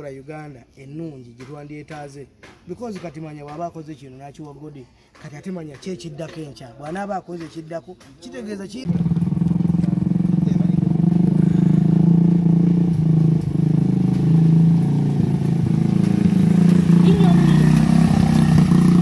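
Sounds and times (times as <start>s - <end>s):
voices: 0.0s - 9.2s, 16.9s - 18.6s
buggy engine running: 8.9s - 19.0s.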